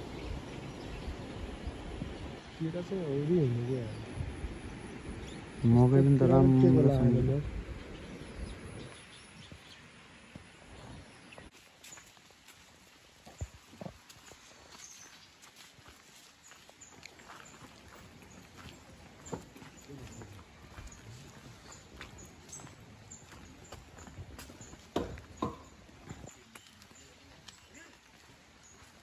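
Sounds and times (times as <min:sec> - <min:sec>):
footsteps on gravel: 0:10.8 - 0:29.0.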